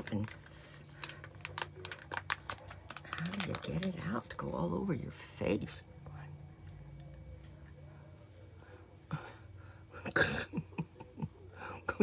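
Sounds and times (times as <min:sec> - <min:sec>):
foil pouch crinkling: 0:00.0 - 0:04.9.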